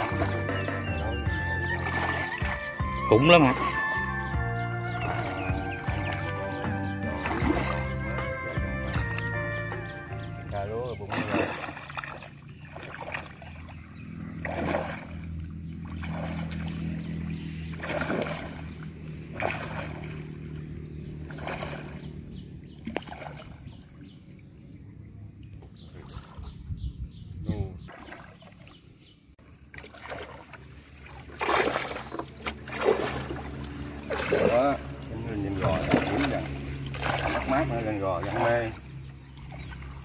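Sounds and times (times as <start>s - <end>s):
water splashing: 0.0s - 24.6s, 25.4s - 26.7s, 27.8s - 28.8s, 29.4s - 40.0s.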